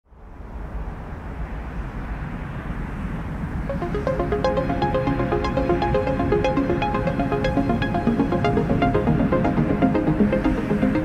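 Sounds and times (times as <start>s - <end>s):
electronic music with plucked notes: 3.7s - 11.0s.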